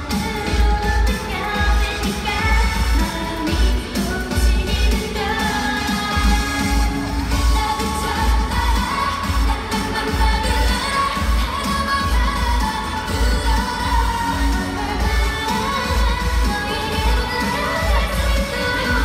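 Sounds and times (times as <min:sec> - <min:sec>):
heavy bass beat: 0:00.0 - 0:19.0
women singing pop song: 0:00.0 - 0:19.0.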